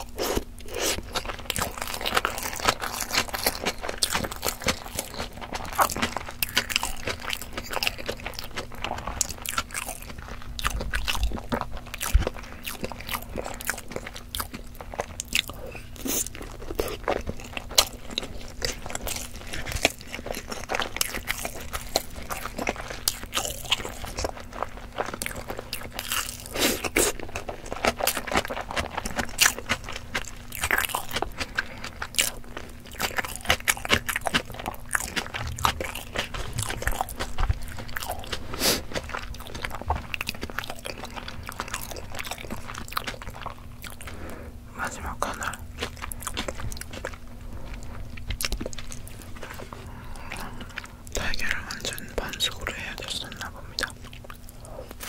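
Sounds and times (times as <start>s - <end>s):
chewing with mouth clicks: 0.0s - 55.0s.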